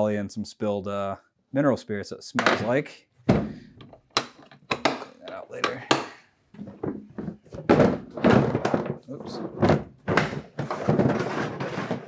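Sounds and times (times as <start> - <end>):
plastic tool box thunks and clatters: 2.4 - 12.0.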